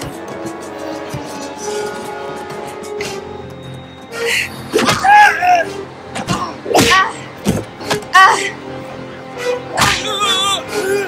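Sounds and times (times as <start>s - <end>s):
action film music score: 0.0s - 11.0s.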